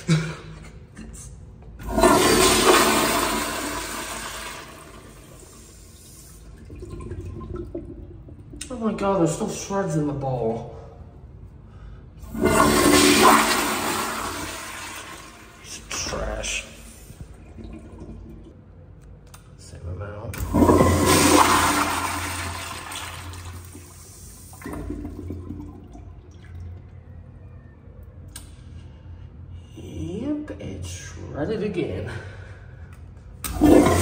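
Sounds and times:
toilet flushing: 1.8 - 8.7, 12.2 - 18.6, 20.4 - 27.1, 33.4 - 34.0.

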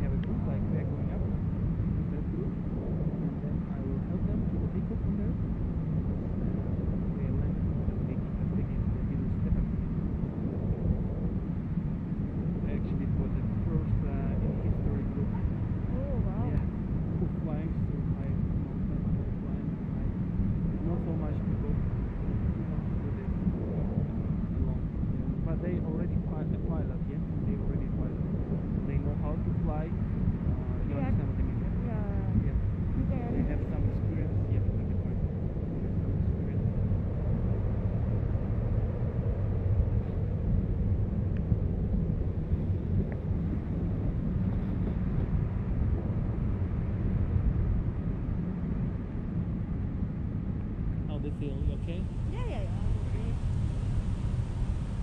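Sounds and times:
muffled voices: 0.0 - 1.4, 2.0 - 11.4, 12.4 - 37.7, 51.0 - 53.6
wind rushing over microphone: 0.0 - 55.0.

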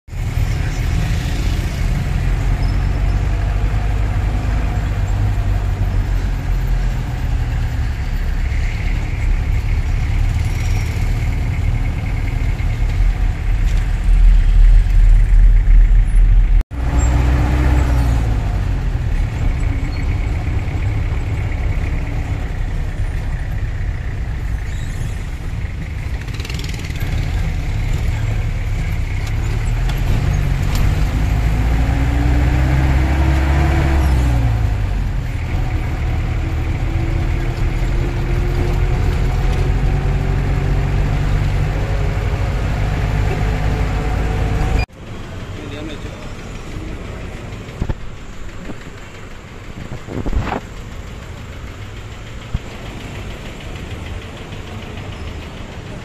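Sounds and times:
minibus engine and road rumble: 0.0 - 56.0.

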